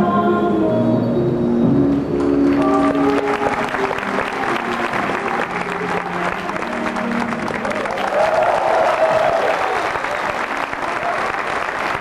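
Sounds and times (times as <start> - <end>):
faint music: 0.0 - 11.2
audience applauding: 2.2 - 12.0.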